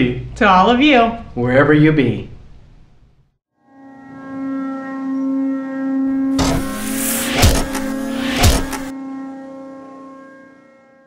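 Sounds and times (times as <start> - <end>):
low synthesized drone: 4.2 - 9.4
loud whoosh: 6.2 - 8.9.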